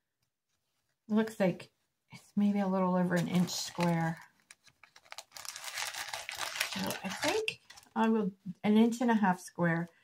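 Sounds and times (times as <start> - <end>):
packaging crinkling: 3.2 - 8.0.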